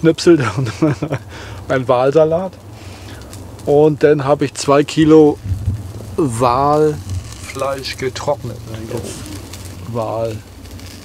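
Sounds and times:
low drone: 5.1 - 10.6
man humming: 8.6 - 9.5.

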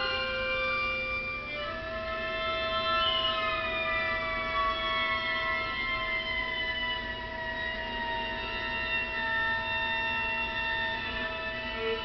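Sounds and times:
violas bowing sustained notes: 0.0 - 12.0.

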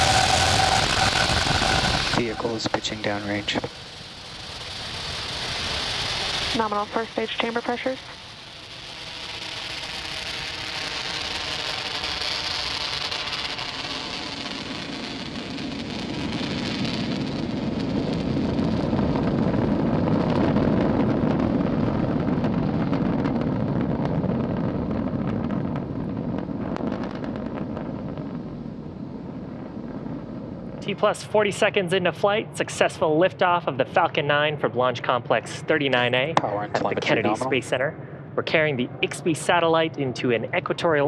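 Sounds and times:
rocket engines rumbling: 0.0 - 41.0.

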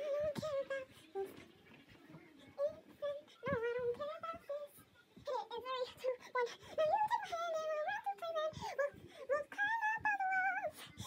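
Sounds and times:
person singing softly: 0.0 - 11.0.

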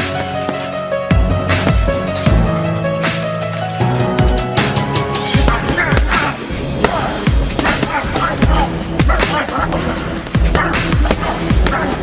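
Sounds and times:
heavy repeating bass beat: 4.2 - 12.0.

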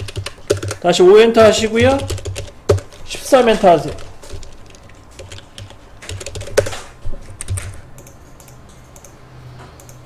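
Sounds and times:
computer keyboard typing: 0.0 - 9.2, 9.8 - 10.0.

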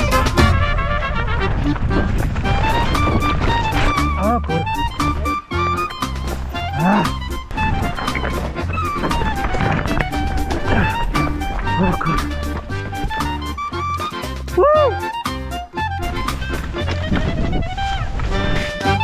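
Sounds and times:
lively melody with sliding notes: 0.0 - 19.0.

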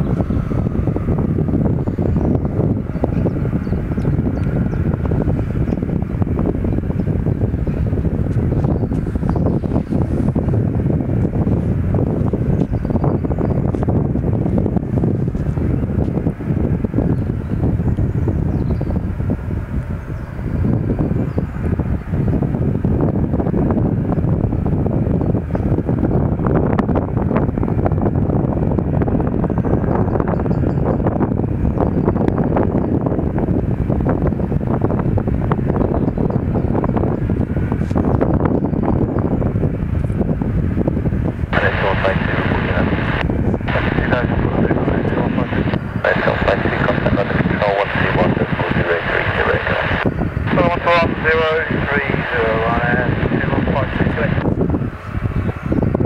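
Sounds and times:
jet engines running low: 0.0 - 56.0
wind buffeting microphone: 0.0 - 56.0.

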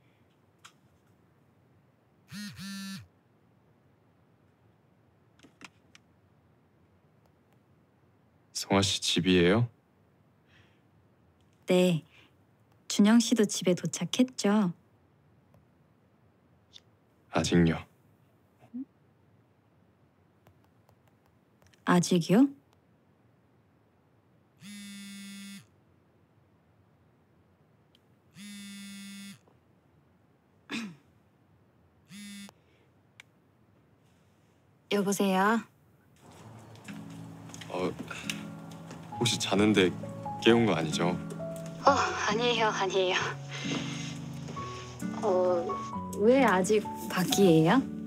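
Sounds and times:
smartphone vibrating against desk: 2.3 - 3.0, 24.6 - 25.7, 28.4 - 29.5, 32.1 - 32.6.

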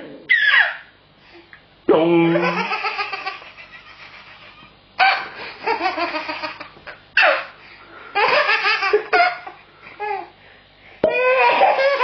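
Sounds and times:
baby laughing: 2.3 - 7.5, 8.2 - 10.3, 11.0 - 12.0.

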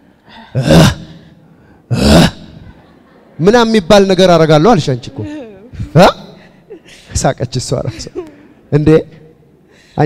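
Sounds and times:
man gasping: 0.2 - 2.0.

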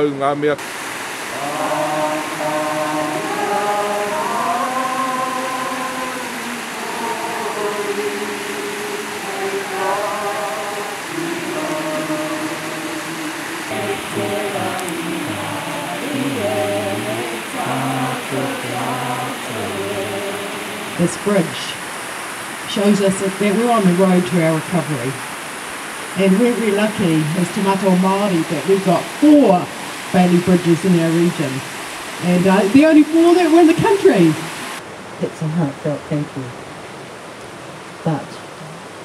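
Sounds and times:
river water rushing: 0.6 - 39.0
group of people singing: 1.3 - 21.6.

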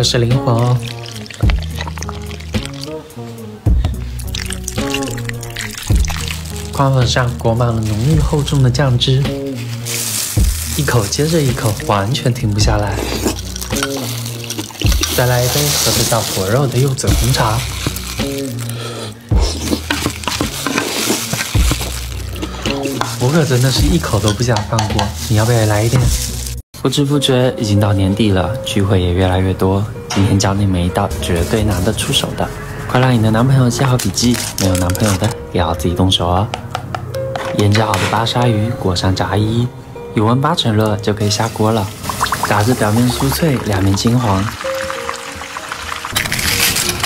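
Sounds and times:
background music: 0.0 - 47.0
chopsticks stirring sticky noodles: 0.5 - 2.9, 9.4 - 26.6
tea poured over ice: 0.5 - 3.0, 4.2 - 8.1, 9.6 - 12.2, 12.8 - 18.9, 19.5 - 24.4, 41.4 - 47.0
low beat: 10.4 - 14.0, 17.0 - 18.5, 21.6 - 26.5.

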